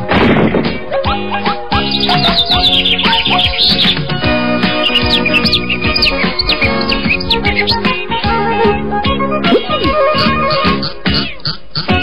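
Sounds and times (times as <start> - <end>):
cartoon background music: 0.0 - 12.0
cartoon bird chirping: 1.8 - 8.0.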